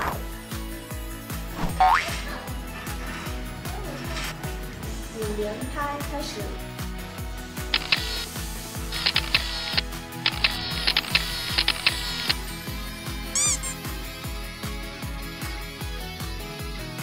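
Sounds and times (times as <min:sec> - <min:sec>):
background music with steady beat: 0:00.0 - 0:17.0
camera shutter clicks: 0:07.8 - 0:08.3, 0:09.0 - 0:12.4
pitched sound effect: 0:13.4 - 0:13.8.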